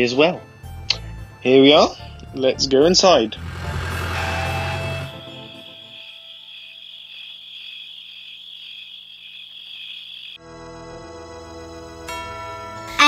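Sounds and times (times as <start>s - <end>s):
soft music: 0.0s - 6.9s, 10.4s - 13.0s
crickets chirping: 3.5s - 10.4s.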